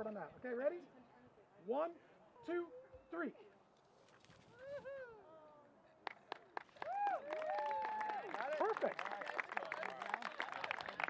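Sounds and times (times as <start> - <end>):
scattered clapping: 6.0 - 11.0
group cheering and whooping: 6.8 - 8.4.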